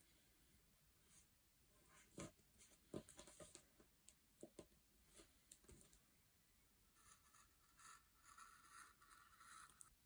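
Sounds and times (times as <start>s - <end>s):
pen scratching on paper: 6.9s - 10.0s.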